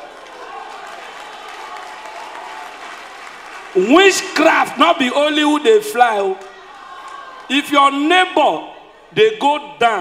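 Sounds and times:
audience applauding: 0.0s - 4.6s
crowd voices: 3.8s - 10.0s.

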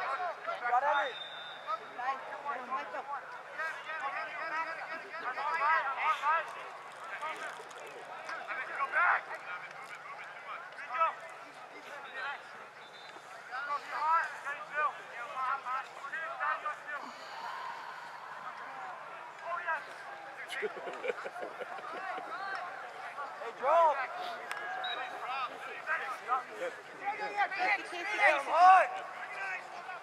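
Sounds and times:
players shouting and calling: 0.0s - 30.0s.

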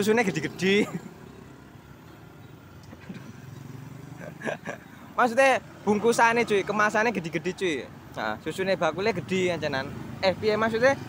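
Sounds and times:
small motorcycle engine passing: 0.0s - 4.8s
car approaching: 0.0s - 11.0s.

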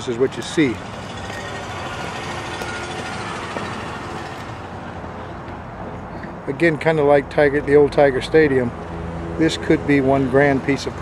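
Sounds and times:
motor vehicle running: 0.0s - 6.1s
faint engine hum: 0.0s - 11.0s.

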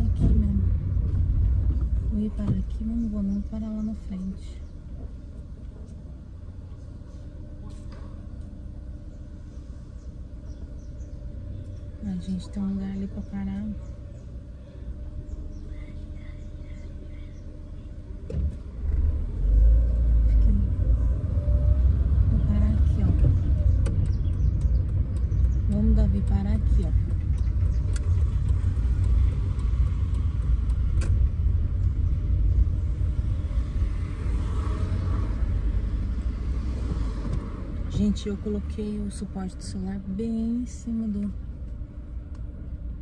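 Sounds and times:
car engine rumble: 0.0s - 43.0s
road noise inside car: 0.0s - 43.0s.

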